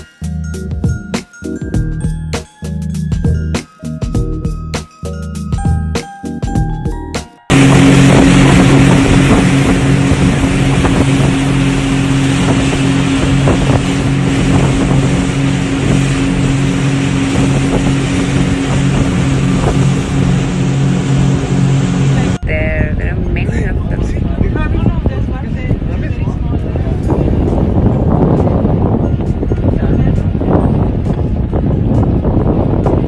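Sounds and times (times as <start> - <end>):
motorboat engine hum: 0.0 - 33.0
wake spray rushing: 7.5 - 22.4
wind buffeting microphone: 7.5 - 33.0.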